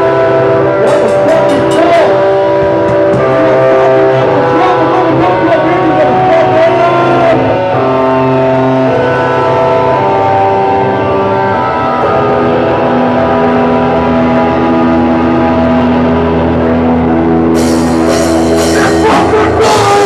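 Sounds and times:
band playing distorted drone: 0:00.0 - 0:20.0.

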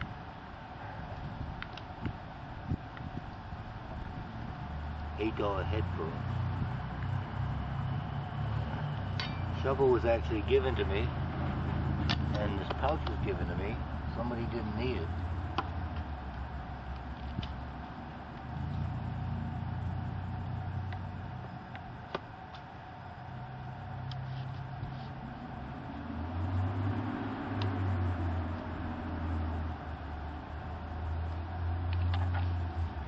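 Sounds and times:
traffic engine rumble: 0:00.0 - 0:33.0.

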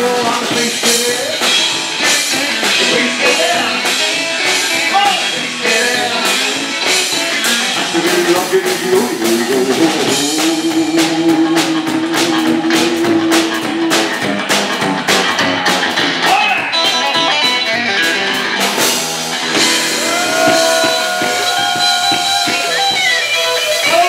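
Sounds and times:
drum kit: 0:00.0 - 0:24.0
electric guitar: 0:00.0 - 0:24.0.

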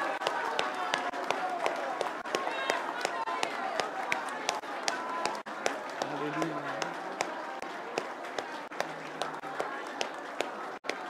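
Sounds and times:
sharp taps or claps: 0:00.0 - 0:11.0
man's voice: 0:06.0 - 0:06.9.

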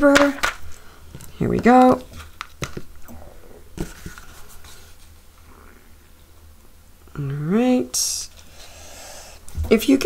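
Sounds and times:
powder rustling: 0:00.0 - 0:05.2.

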